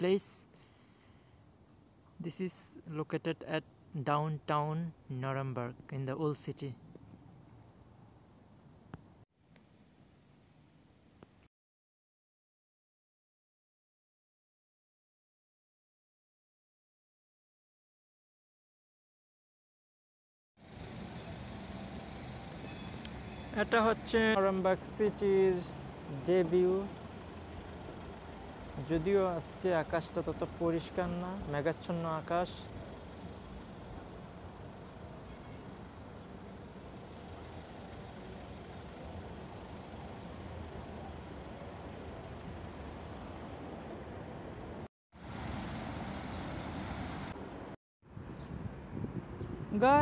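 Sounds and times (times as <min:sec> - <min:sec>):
distant traffic rumble: 0:20.6 - 0:50.0.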